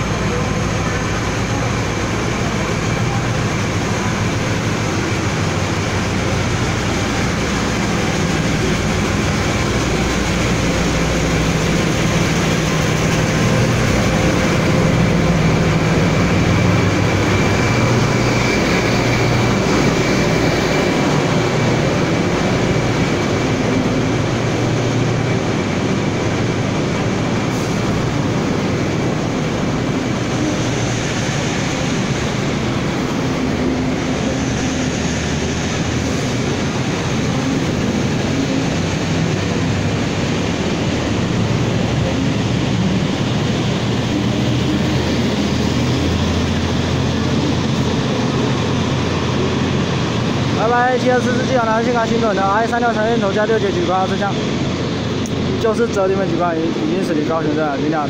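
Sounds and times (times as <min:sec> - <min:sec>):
locomotive engine droning: 0:00.0 - 0:58.0
train coaches rumbling on rails: 0:00.0 - 0:58.0.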